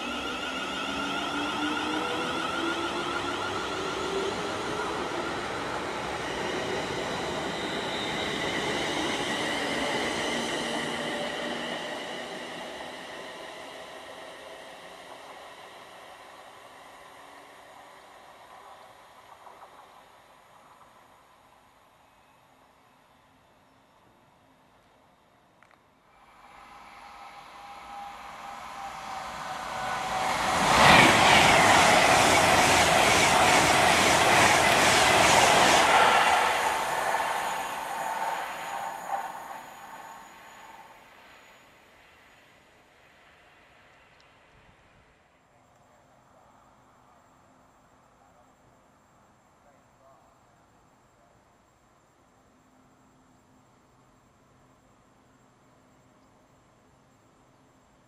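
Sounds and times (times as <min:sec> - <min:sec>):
electric train passing at speed: 0:00.0 - 0:45.4.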